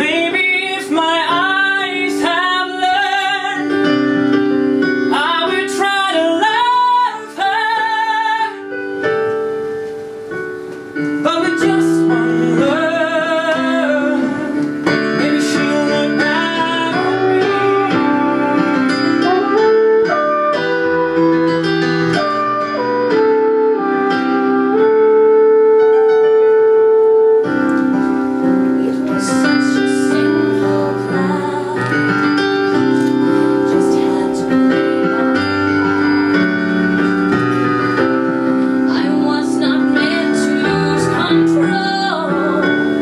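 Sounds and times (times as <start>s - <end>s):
man and woman singing: 0.0s - 3.9s, 5.1s - 8.6s, 11.2s - 18.8s, 28.8s - 34.8s, 38.9s - 43.0s
piano accompaniment: 0.0s - 43.0s.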